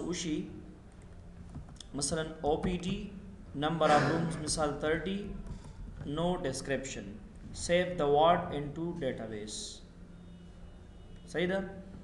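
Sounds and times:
person speaking: 0:01.8 - 0:05.4.

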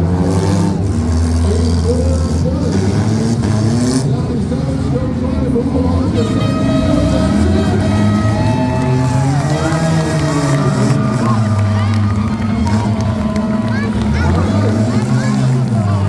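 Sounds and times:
car engines revving: 0:00.0 - 0:16.0
music over arena: 0:00.1 - 0:16.0
voices: 0:00.8 - 0:16.0.

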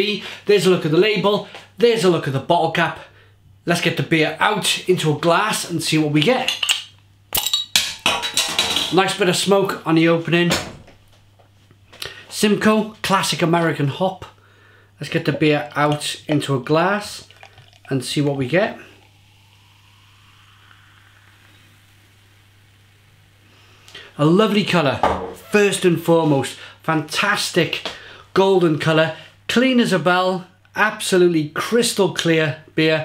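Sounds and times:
carbonation gas hissing: 0:13.3 - 0:24.8
beer pouring into a glass: 0:15.0 - 0:23.9.

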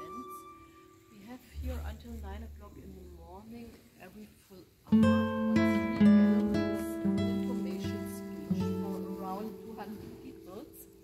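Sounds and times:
acoustic guitar chords: 0:00.0 - 0:03.4, 0:04.9 - 0:11.0.

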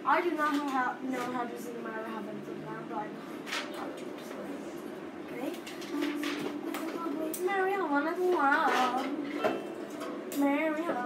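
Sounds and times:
plucked string instrument: 0:05.8 - 0:11.0
child singing: 0:05.9 - 0:09.3.

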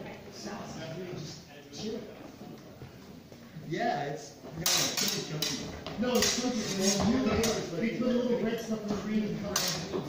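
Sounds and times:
swords clashing: 0:04.6 - 0:05.6, 0:06.2 - 0:07.6, 0:09.6 - 0:09.9.

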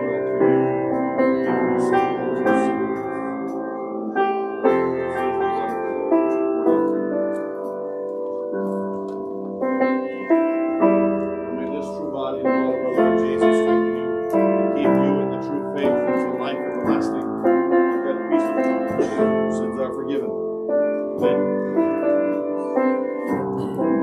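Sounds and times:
piano playing chords and melody: 0:00.0 - 0:24.0.

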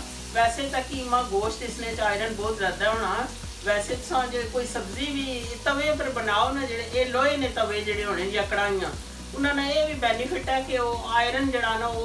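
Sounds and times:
meat sizzling in a pan: 0:00.0 - 0:12.0
woman talking: 0:00.4 - 0:12.0.

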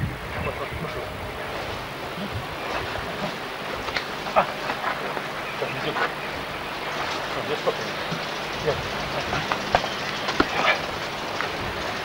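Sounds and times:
tape hiss and hum: 0:00.0 - 0:12.0.

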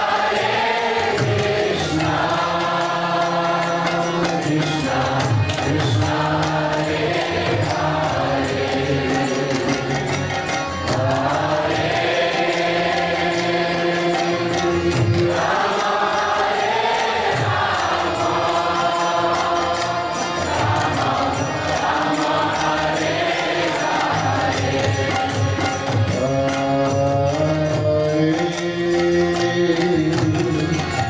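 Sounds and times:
voices chanting a mantra: 0:00.0 - 0:09.7, 0:10.9 - 0:25.4
harmonium chords: 0:00.0 - 0:31.0.

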